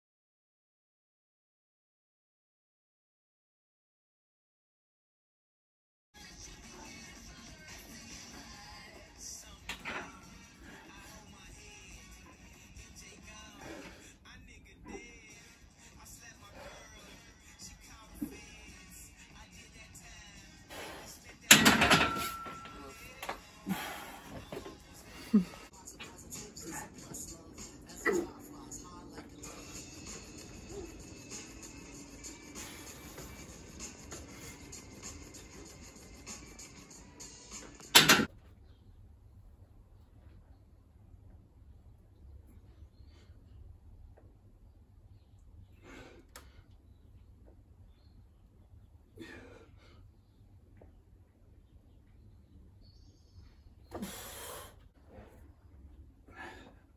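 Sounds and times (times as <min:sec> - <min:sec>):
faint background music: 0:06.2 - 0:46.1
barbell plates clanking: 0:21.5 - 0:23.1, 0:38.0 - 0:38.3
short breath: 0:54.0 - 0:54.8.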